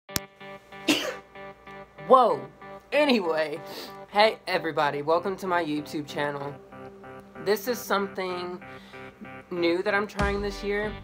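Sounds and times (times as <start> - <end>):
soft background music: 0.1 - 11.0
person sneezing: 0.9 - 1.3.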